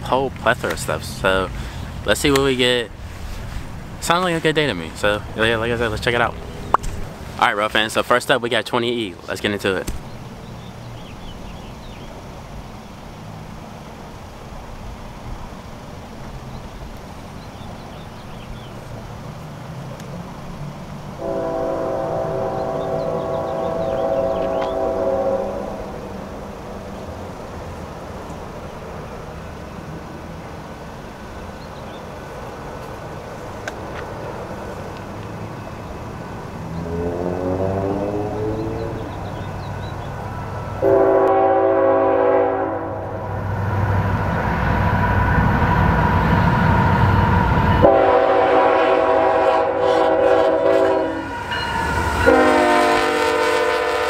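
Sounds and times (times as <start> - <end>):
locomotive engine rumble: 0.0 - 12.0, 12.6 - 54.0
train horn blasts: 21.2 - 26.2, 40.8 - 43.3, 47.7 - 54.0.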